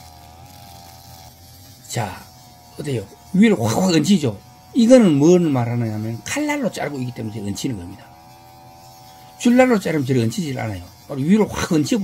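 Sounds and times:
faint brush cutter buzzing: 0.0s - 12.0s.

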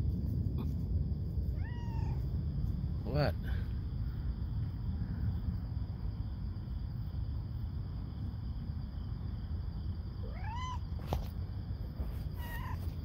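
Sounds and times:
steady low rumble: 0.0s - 13.0s
cat meowing: 1.5s - 2.3s, 10.2s - 10.8s, 12.4s - 13.0s.

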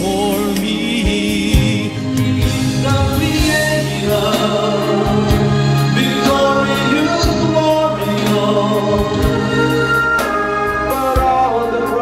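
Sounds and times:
gospel ballad accompaniment: 0.0s - 12.0s
man singing: 0.0s - 12.0s.

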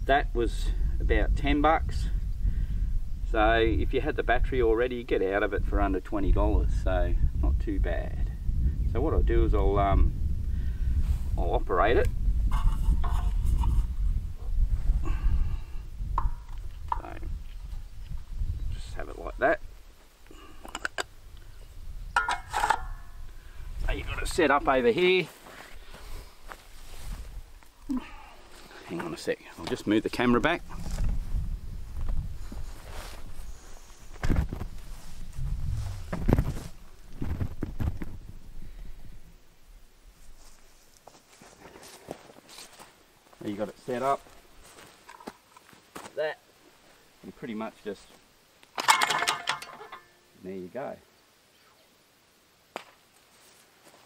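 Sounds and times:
rattling and metallic ringing: 22.2s - 23.2s, 48.8s - 50.3s
person muttering: 27.9s - 28.2s
clay target thrower clack: 48.8s - 50.2s.

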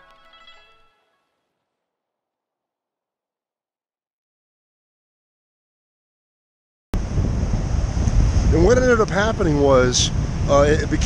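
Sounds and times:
wind on microphone: 7.0s - 11.0s.

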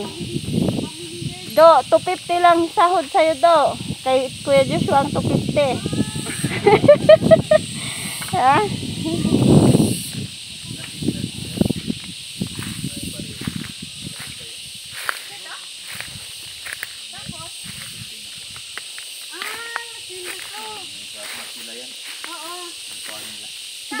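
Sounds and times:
insects droning: 0.0s - 24.0s
footsteps on dry leaves and rocks: 11.7s - 23.4s.

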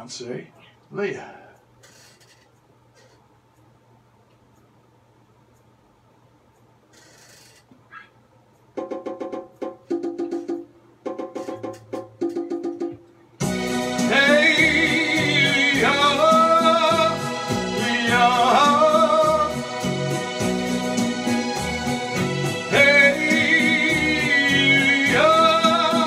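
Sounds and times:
musical accompaniment: 8.8s - 26.0s
man singing with vibrato: 13.7s - 20.8s, 22.4s - 26.0s.

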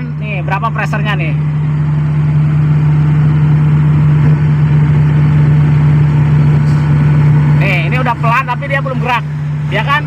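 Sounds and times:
excavator diesel engine running: 0.0s - 10.0s.

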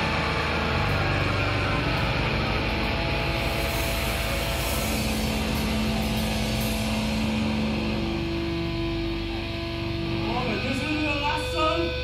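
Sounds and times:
distorted guitar and bass: 0.0s - 12.0s.

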